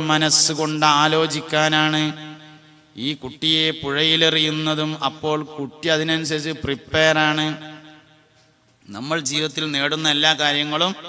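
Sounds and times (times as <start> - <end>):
man chanting: 0.0 - 8.0, 8.9 - 11.0.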